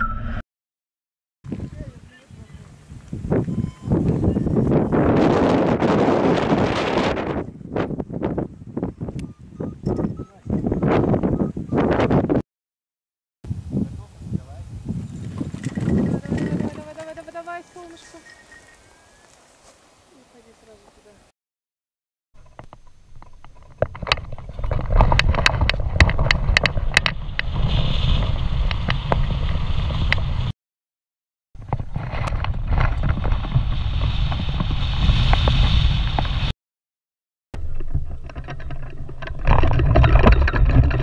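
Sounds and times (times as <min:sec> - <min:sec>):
wind rushing over microphone: 0:01.5 - 0:12.4, 0:13.5 - 0:18.7, 0:23.7 - 0:30.5, 0:31.6 - 0:36.5
running footsteps on grass: 0:14.9 - 0:21.2.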